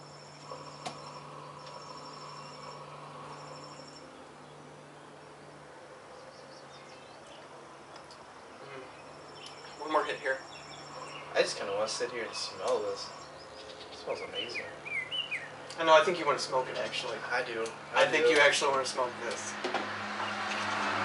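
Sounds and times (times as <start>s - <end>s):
insects chirping in trills: 0.0s - 4.7s, 8.4s - 15.6s
low steady hum: 0.0s - 19.5s.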